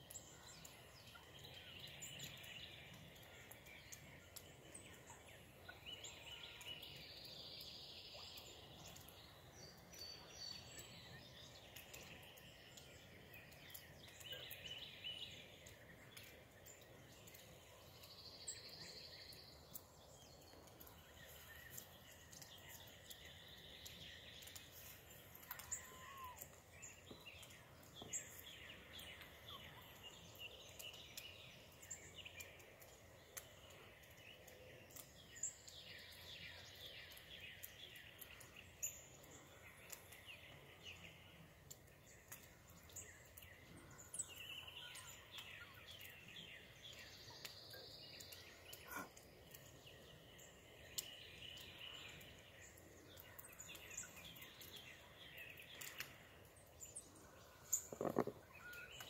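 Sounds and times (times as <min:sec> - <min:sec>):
small birds chirping: 0:00.0 - 0:59.0.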